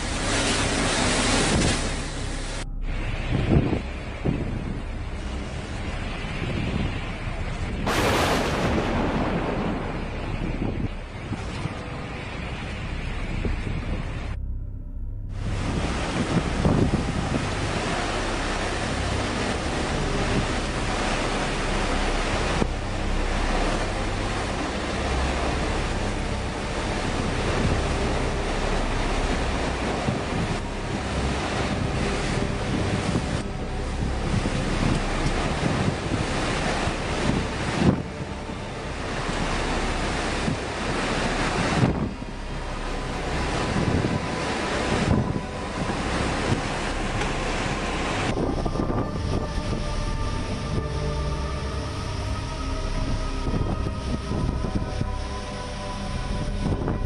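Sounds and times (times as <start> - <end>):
driving rain: 0.0 - 14.4, 15.3 - 57.0
strong gusting wind: 0.0 - 14.4, 15.3 - 57.0
wind buffeting microphone: 0.0 - 14.5, 15.3 - 57.0.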